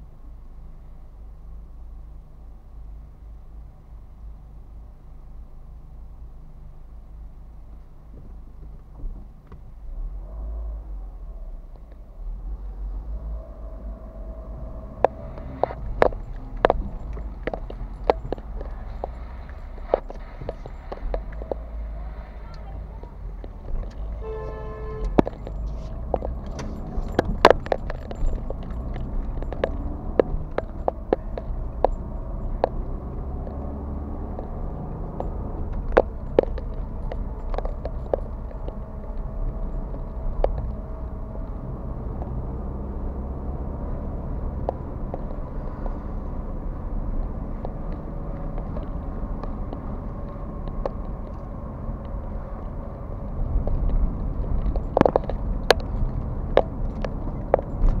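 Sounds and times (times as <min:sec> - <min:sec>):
engine and road rumble: 0:00.0 - 0:58.0
sharp clicks and rattles: 0:14.2 - 0:58.0.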